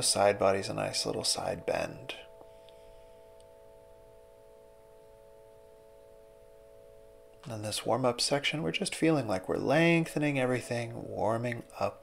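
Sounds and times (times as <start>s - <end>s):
soft held chord of pure tones: 0.0s - 12.0s.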